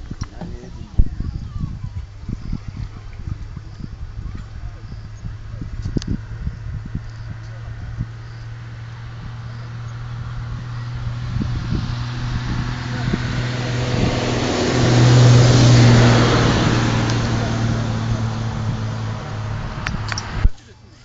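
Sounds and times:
motor vehicle passing by: 0.0 - 21.0
steady low hum: 0.0 - 21.0.

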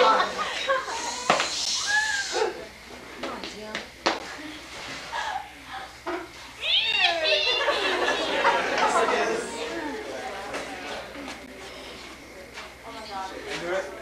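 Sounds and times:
group of people talking: 0.0 - 14.0
high squealing voices: 1.0 - 2.6, 6.6 - 9.9.

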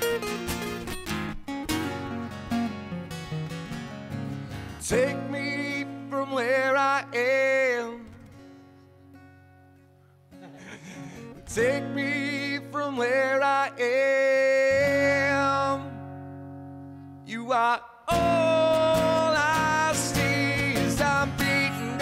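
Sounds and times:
acoustic guitars strummed: 0.0 - 22.0
man singing: 4.8 - 8.4, 10.8 - 16.2, 17.2 - 22.0.

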